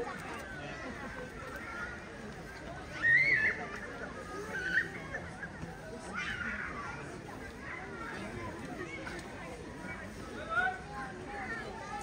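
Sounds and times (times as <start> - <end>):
indistinct background chatter: 0.0 - 12.0.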